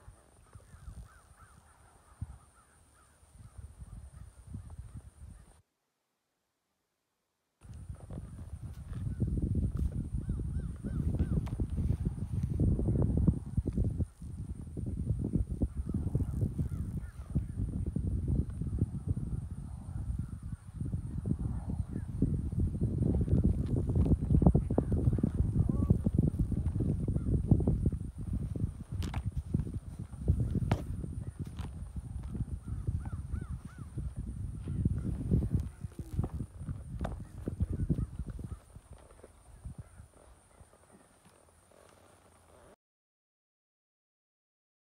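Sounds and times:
low thumps of horse movement: 7.6s - 42.8s
pony hoofbeats: 23.0s - 42.8s.

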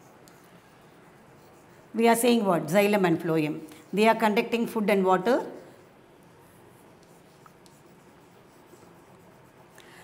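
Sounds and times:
chalk scratching on blackboard: 0.0s - 4.4s, 5.5s - 10.0s
chalk tapping on blackboard: 6.3s - 9.9s.

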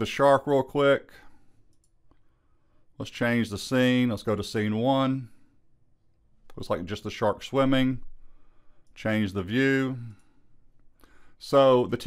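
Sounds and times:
computer mouse clicks: 1.7s - 2.2s.

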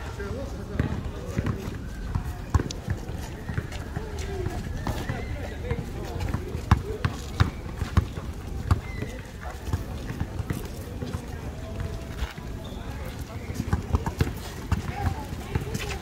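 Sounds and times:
basketball bouncing on asphalt: 0.7s - 16.0s
sneakers running: 0.7s - 16.0s.

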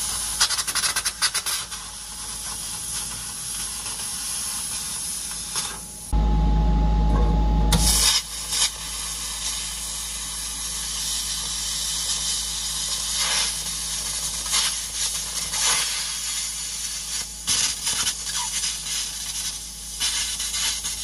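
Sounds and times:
plasma cutter hissing: 0.0s - 6.1s, 7.7s - 21.0s
loud low rumble: 6.2s - 8.0s.

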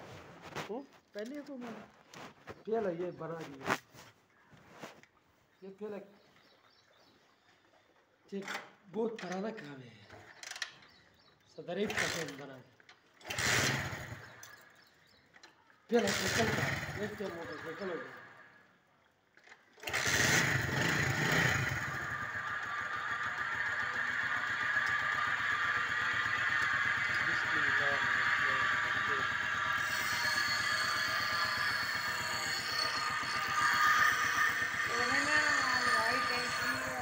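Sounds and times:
motorcycle engine running: 16.0s - 18.4s, 19.8s - 37.0s
high-pitched whir: 19.9s - 37.0s.

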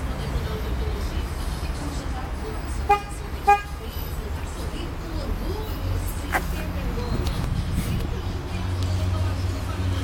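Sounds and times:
car horn toots: 2.8s - 3.7s
steady low rumble: 3.8s - 9.2s.

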